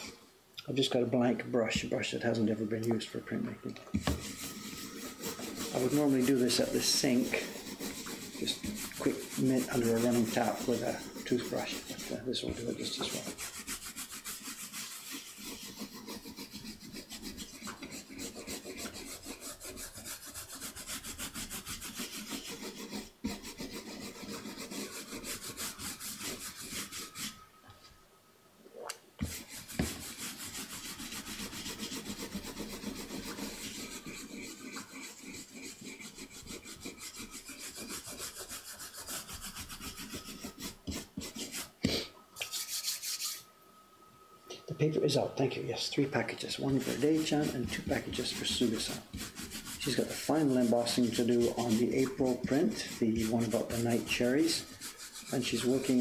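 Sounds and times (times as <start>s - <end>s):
bristle brush scrubbing wood: 4.0s - 27.4s, 29.2s - 41.8s, 45.9s - 56.0s.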